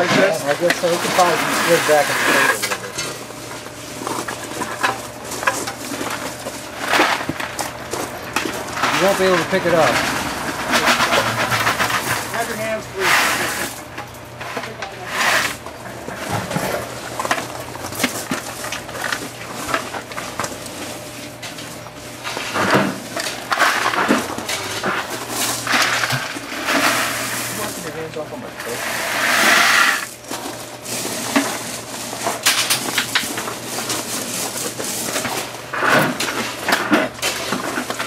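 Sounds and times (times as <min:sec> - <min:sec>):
people talking: 0:00.0 - 0:02.8, 0:08.8 - 0:10.1, 0:12.3 - 0:13.7, 0:27.5 - 0:28.8
gravel rattling in plastic bucket: 0:00.0 - 0:13.8, 0:14.4 - 0:20.7, 0:21.6 - 0:38.0.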